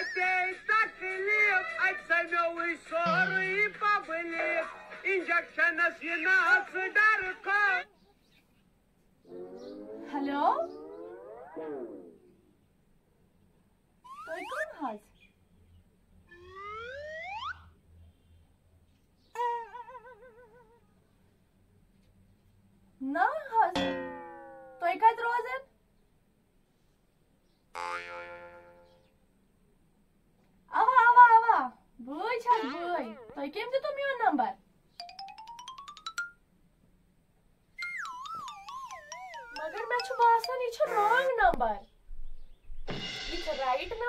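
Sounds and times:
cartoon rising tone effect: 0:09.2 - 0:12.5, 0:14.0 - 0:14.8, 0:16.3 - 0:17.8, 0:37.8 - 0:41.3.

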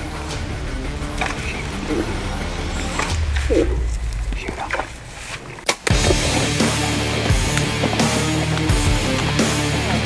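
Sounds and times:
heavy rock music: 0:00.0 - 0:05.2, 0:05.8 - 0:10.0.

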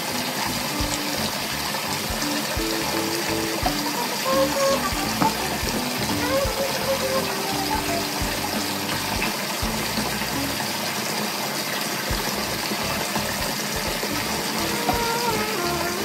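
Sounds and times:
soft background music: 0:00.0 - 0:11.0
water running into a bathtub: 0:00.0 - 0:16.0.

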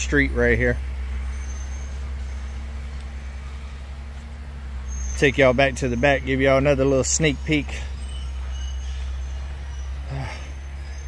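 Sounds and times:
distant bulldozer engine rumble: 0:00.0 - 0:11.0.

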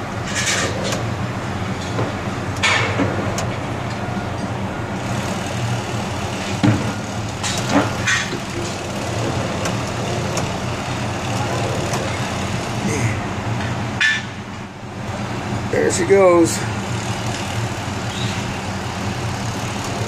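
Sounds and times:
construction machinery droning: 0:00.0 - 0:20.0.

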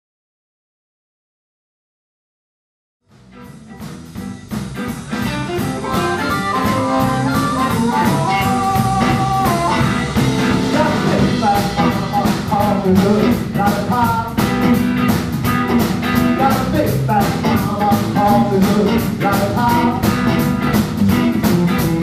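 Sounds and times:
live blues band playing: 0:03.2 - 0:22.0.

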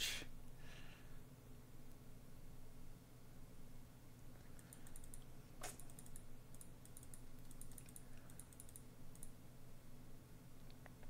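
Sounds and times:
keyboard typing: 0:04.5 - 0:09.4.

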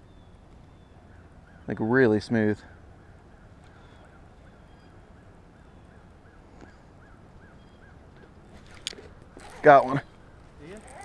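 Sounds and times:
fishing reel whirring: 0:10.6 - 0:11.0.

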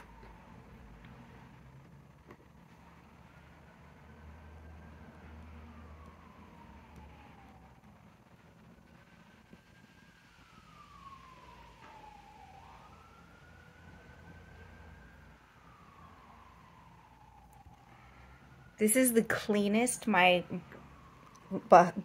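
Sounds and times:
distant siren wailing: 0:00.0 - 0:22.0.

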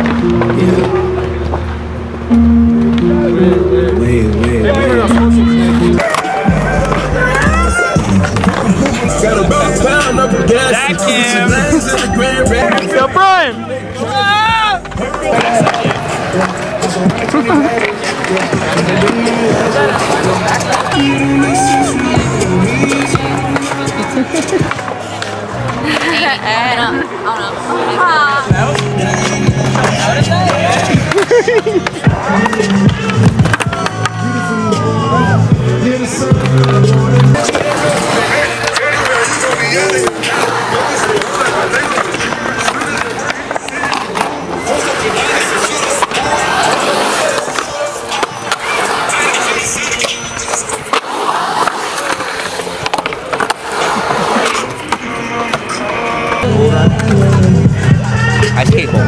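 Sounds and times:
music playing: 0:00.0 - 0:59.0
skateboard wheels rolling on concrete: 0:00.0 - 0:59.0
skateboard knocking: 0:02.4 - 0:10.6, 0:14.3 - 0:26.3, 0:28.5 - 0:34.4.

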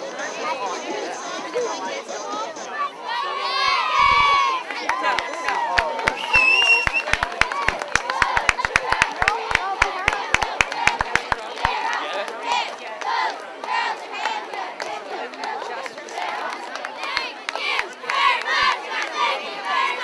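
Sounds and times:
crowd chatter: 0:00.0 - 0:20.0
girls shouting a cheer: 0:02.8 - 0:05.8
quick rhythmic clapping: 0:04.6 - 0:19.3.

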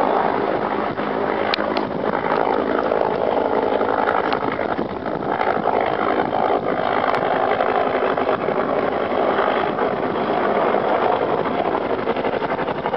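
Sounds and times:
helicopter rotor and engine drone: 0:00.0 - 0:12.9.

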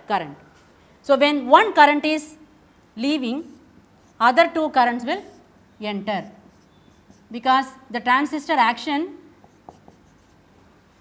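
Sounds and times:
marker pen on whiteboard: 0:03.2 - 0:08.6, 0:09.2 - 0:11.0.

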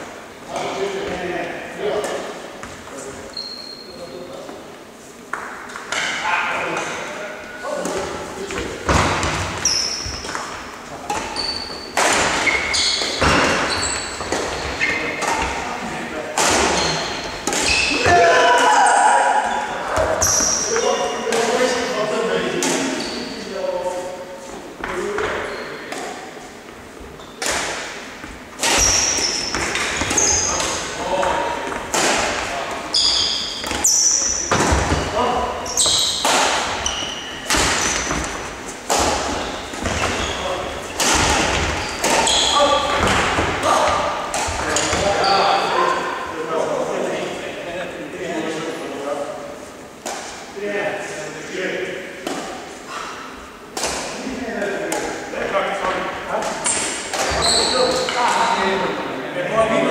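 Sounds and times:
shoes squeaking on wooden court: 0:02.0 - 0:46.2, 0:56.4 - 0:59.0
rackets hitting shuttlecock: 0:07.8 - 0:21.8, 0:22.5 - 0:23.0, 0:27.4 - 0:45.2, 0:52.2 - 0:55.2, 0:56.4 - 0:58.5.

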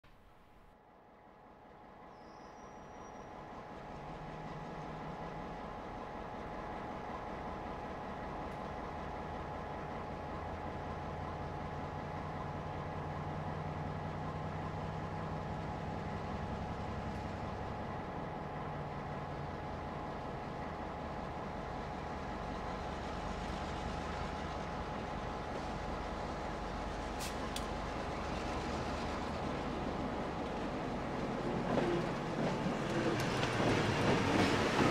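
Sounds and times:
diesel locomotive engine drone: 0:00.2 - 0:34.9.

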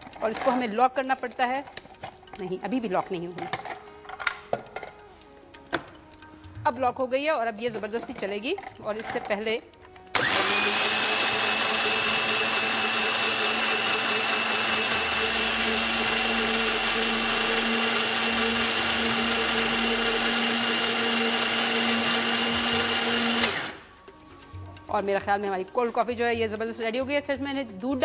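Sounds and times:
blender running with high whine: 0:10.2 - 0:23.9.

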